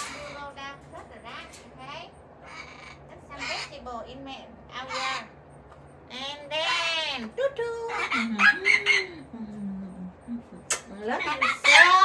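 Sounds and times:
parrot squawking: 0:00.0 - 0:09.3, 0:11.2 - 0:12.0
soft parrot chatter: 0:00.0 - 0:12.0.

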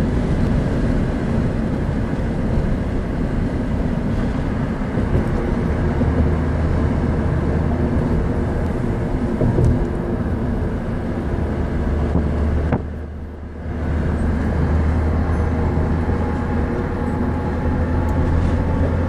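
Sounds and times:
vehicle interior rumble: 0:00.0 - 0:19.0.

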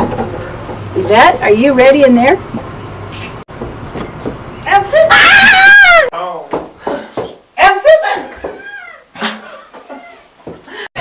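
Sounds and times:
woman shrieking: 0:05.0 - 0:06.1.

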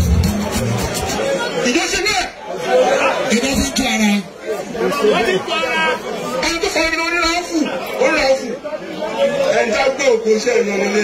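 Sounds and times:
man speaking through a microphone: 0:01.2 - 0:11.0.

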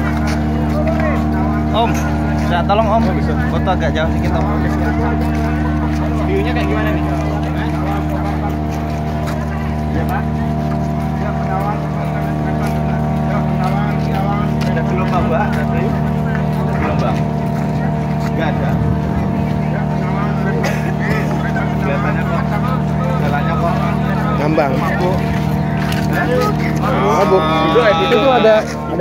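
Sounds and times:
crowd chatter: 0:00.0 - 0:29.0
ship engine low drone: 0:00.0 - 0:29.0.

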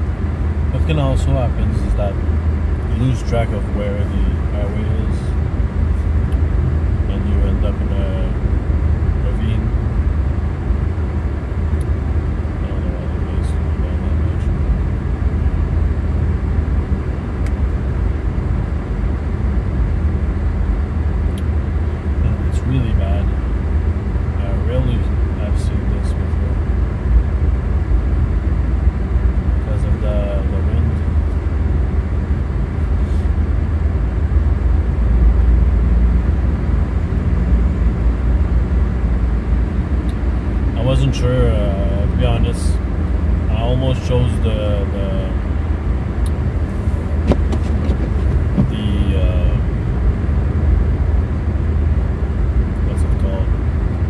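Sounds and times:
tyre and engine drone: 0:00.0 - 0:54.0.

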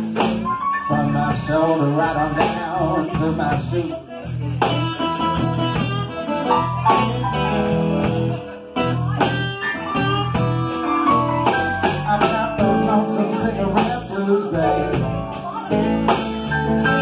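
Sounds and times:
bass guitar: 0:00.0 - 0:17.0
drums with cymbal hits: 0:00.0 - 0:17.0
electric guitar: 0:00.0 - 0:17.0
keyboard playing: 0:00.0 - 0:17.0.

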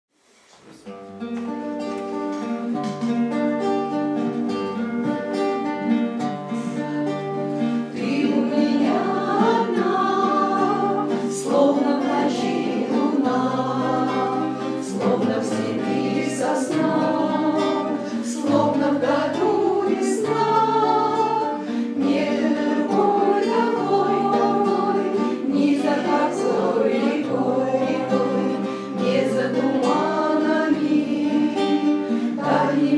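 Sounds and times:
strummed acoustic guitars: 0:00.3 - 0:32.9
group singing: 0:07.6 - 0:32.9.

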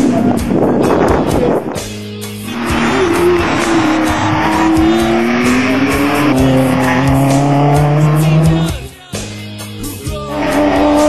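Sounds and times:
car engine accelerating hard: 0:02.3 - 0:08.9, 0:10.3 - 0:11.0.

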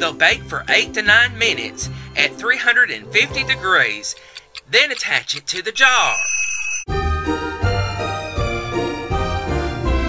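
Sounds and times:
music: 0:00.0 - 0:04.3, 0:06.9 - 0:10.0
kitchen timer bell ding: 0:05.7 - 0:06.9.

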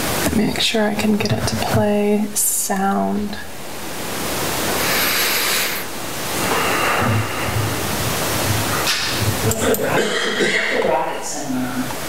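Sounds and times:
microphone and room hiss: 0:00.0 - 0:12.0.

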